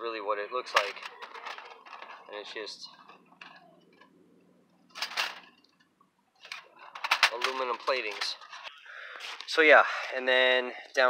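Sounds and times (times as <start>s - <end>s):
metal plates rattling and clinking: 0.7s - 2.3s, 4.9s - 5.6s, 6.4s - 8.7s.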